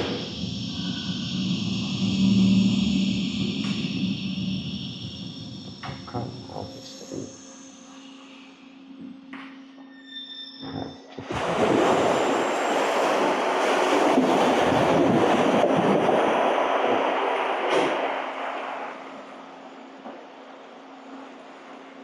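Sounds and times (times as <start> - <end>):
low hum: 0.0 - 22.0
rush of turbulent water: 11.2 - 19.9.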